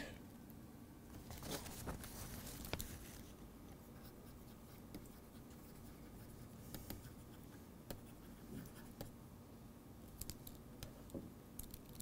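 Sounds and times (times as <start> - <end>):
stylus scratching on tablet screen: 3.8 - 9.2.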